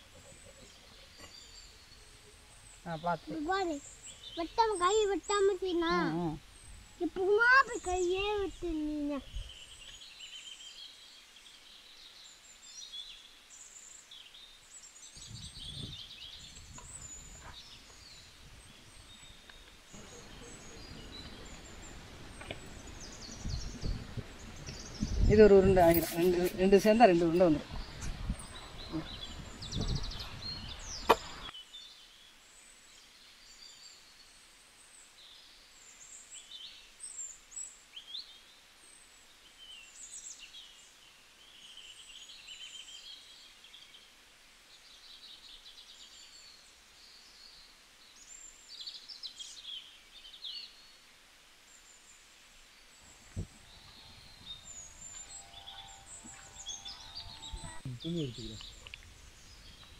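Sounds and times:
birds chirping: 0.0s - 32.3s, 51.7s - 59.9s.

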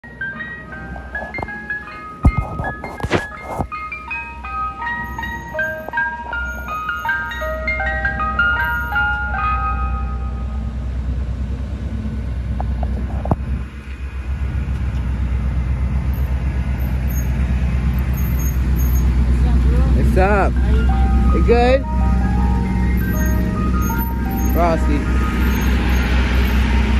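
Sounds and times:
ice cream truck chime jingle: 0.0s - 11.1s, 16.0s - 26.9s
truck engine rumble: 0.0s - 26.9s.

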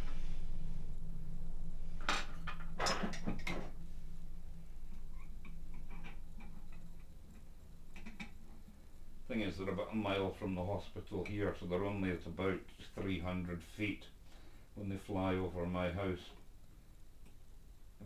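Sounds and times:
low steady hum: 0.0s - 18.0s
small parts clicking and tapping: 5.4s - 8.5s.

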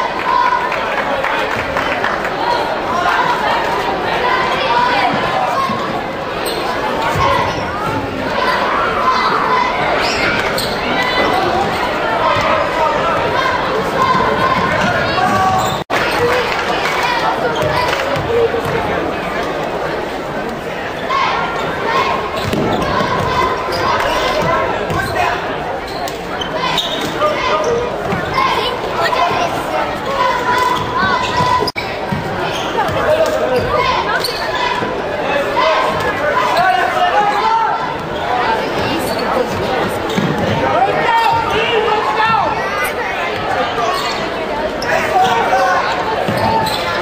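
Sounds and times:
echoing shouting voices: 0.0s - 19.2s, 20.8s - 47.0s
shoes squeaking: 4.9s - 12.5s, 13.4s - 16.2s, 20.9s - 34.8s, 36.0s - 41.7s, 43.7s - 47.0s
basketball bouncing on court: 22.4s - 23.4s.

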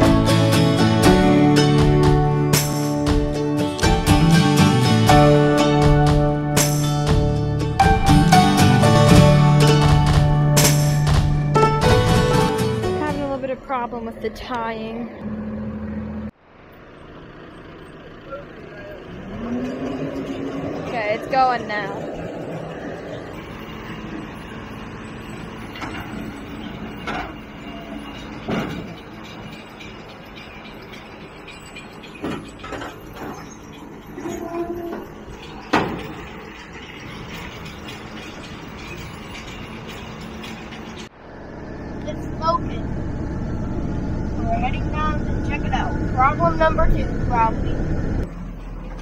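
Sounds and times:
tractor engine running: 0.0s - 49.0s
vehicle rumble: 0.0s - 49.0s
baler tailgate clunks: 24.8s - 41.0s
tailgate bang: 25.7s - 29.5s, 32.1s - 38.0s.

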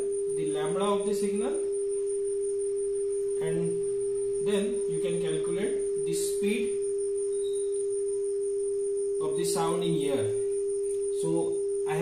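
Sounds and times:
steady sine tone: 0.0s - 12.0s.

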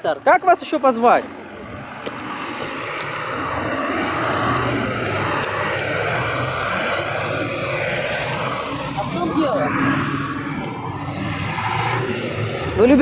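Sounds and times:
heavy vehicle passing: 0.0s - 13.0s.

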